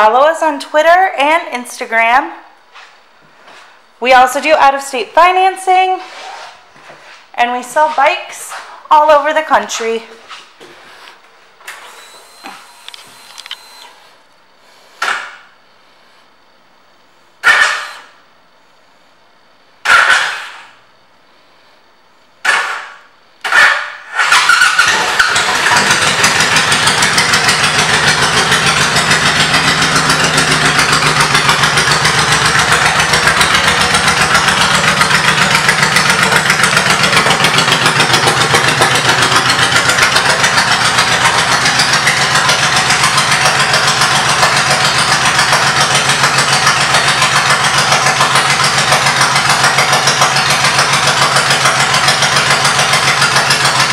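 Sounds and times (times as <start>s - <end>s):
motorcycle engine starting and idling: 11.7s - 14.2s, 22.4s - 53.9s.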